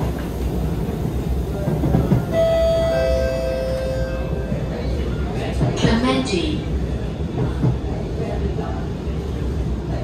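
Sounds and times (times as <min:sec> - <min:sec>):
metro train rumbling: 0:00.0 - 0:10.0.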